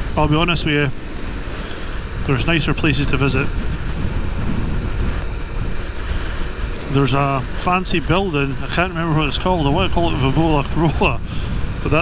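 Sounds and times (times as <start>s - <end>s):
motorcycle engine: 0.0s - 12.0s
road noise: 0.0s - 12.0s
wind buffeting microphone: 0.0s - 12.0s.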